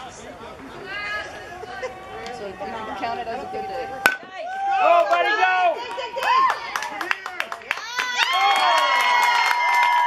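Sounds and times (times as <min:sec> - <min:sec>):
spectators shouting and cheering: 0:00.7 - 0:10.0
bat hitting ball crack: 0:04.0 - 0:04.3.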